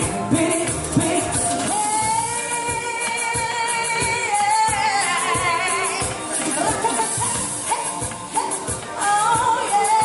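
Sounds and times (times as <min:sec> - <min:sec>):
amplified cumbia music: 0:00.0 - 0:10.0.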